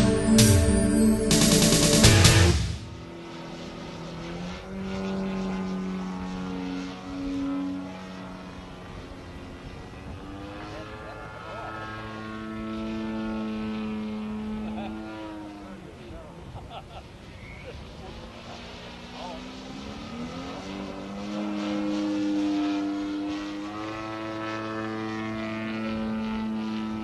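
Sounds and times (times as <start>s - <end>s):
model airplane engine flying overhead: 0.0s - 27.0s.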